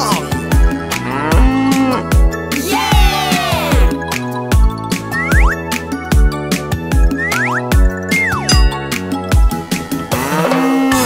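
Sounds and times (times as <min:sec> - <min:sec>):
cow mooing: 0:00.9 - 0:02.1, 0:10.1 - 0:11.0.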